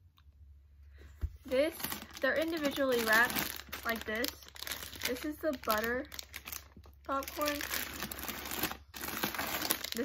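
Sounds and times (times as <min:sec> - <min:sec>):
plastic bags crinkling: 0:01.5 - 0:10.0.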